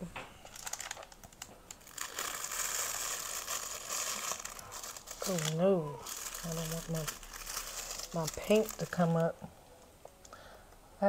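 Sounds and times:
foil sheet crinkling: 0.4s - 9.4s.

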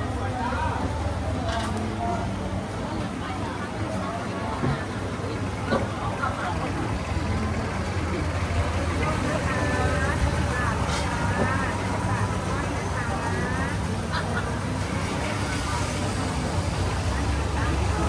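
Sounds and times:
low engine hum: 0.0s - 18.0s
people chattering: 0.0s - 18.0s.

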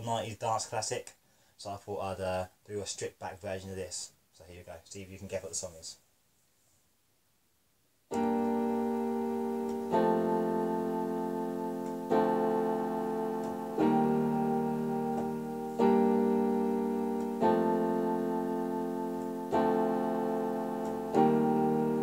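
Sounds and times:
digital piano chords: 8.1s - 22.0s.

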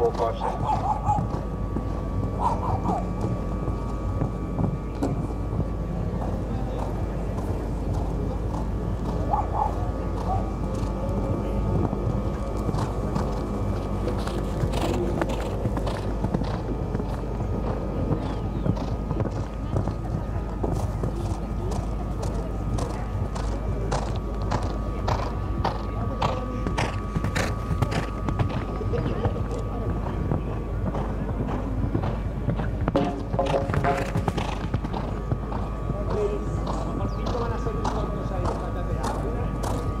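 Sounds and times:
background chatter: 0.0s - 40.0s
horse hoofbeats on sand: 0.0s - 40.0s.

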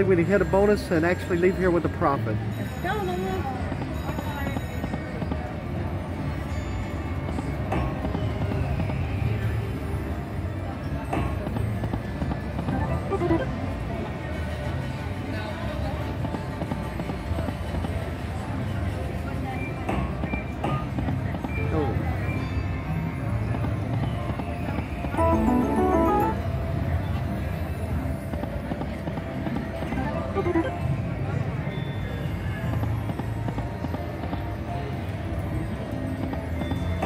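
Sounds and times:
background chatter: 0.0s - 37.0s
slot machine jingles: 12.7s - 13.5s, 25.2s - 26.4s, 30.0s - 30.8s
slot machine reel spin: 12.7s - 13.6s, 25.2s - 26.4s, 30.0s - 30.8s
casino hum: 12.7s - 13.8s, 25.2s - 26.4s, 29.9s - 30.8s.

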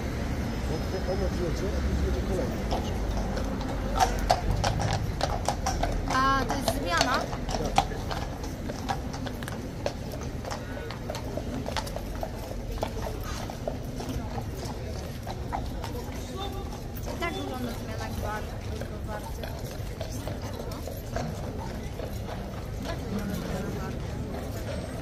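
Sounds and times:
horse hooves clip-clopping on stone: 0.9s - 25.0s.

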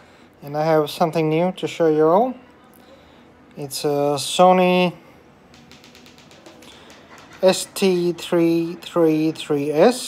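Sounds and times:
light tapping and clicking: 5.5s - 7.8s.

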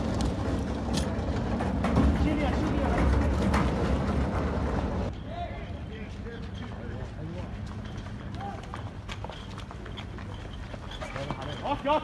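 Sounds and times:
people running: 0.0s - 5.1s, 6.0s - 12.0s.

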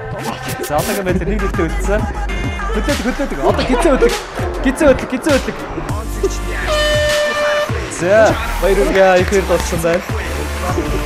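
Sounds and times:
background music: 0.0s - 11.0s
game-show horn tone: 6.2s - 8.8s.

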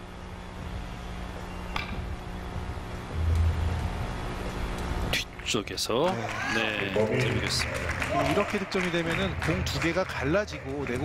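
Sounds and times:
low hum: 0.0s - 5.5s.

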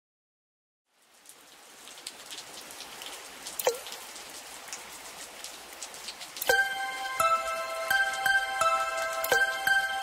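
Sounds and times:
rain patter: 0.9s - 10.0s
drip-like plink: 3.6s - 4.0s, 9.2s - 9.8s.

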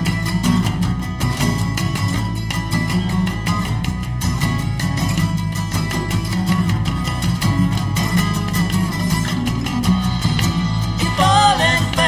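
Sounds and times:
instrumental guitar band music: 0.0s - 12.0s.

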